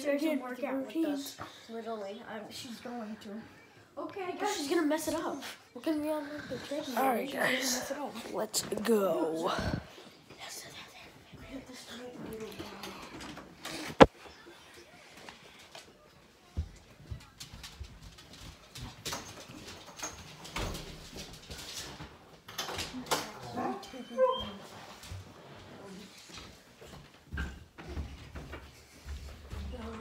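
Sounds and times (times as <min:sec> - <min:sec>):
dog whining: 0:23.5 - 0:24.7.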